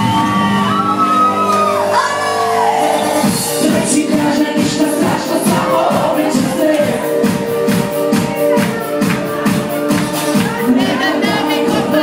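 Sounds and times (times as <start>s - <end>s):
people shouting: 0.0s - 3.4s
loud backing music: 0.0s - 12.0s
live pop singing: 2.1s - 12.0s.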